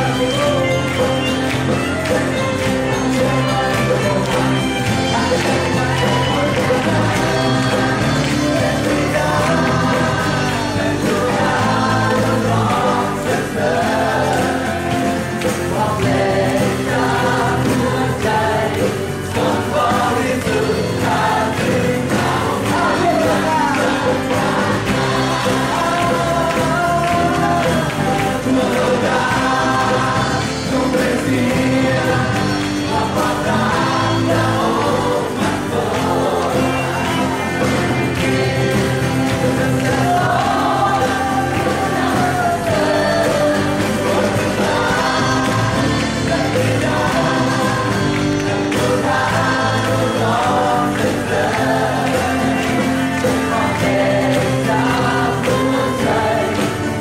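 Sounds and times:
acoustic guitar: 0.0s - 57.0s
group of voices singing: 0.0s - 57.0s
man singing: 2.9s - 57.0s.

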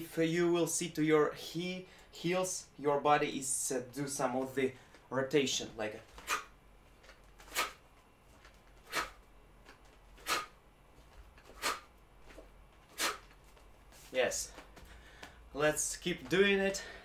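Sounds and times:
man's sharp hissing exhalations: 8.9s - 9.2s, 10.2s - 10.5s, 11.6s - 11.9s, 13.0s - 13.2s.

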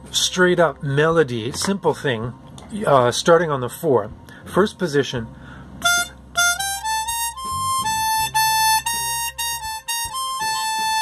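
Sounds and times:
harmonica melody: 5.8s - 11.0s.

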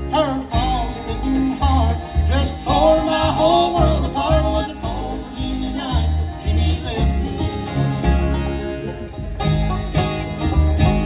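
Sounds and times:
acoustic guitar: 0.0s - 11.0s
fiddle: 0.0s - 11.0s
mandolin: 0.0s - 11.0s
upright bass: 0.0s - 11.0s.

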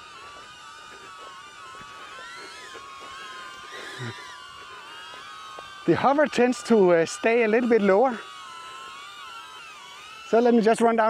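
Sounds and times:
drone propeller whine: 0.0s - 11.0s.

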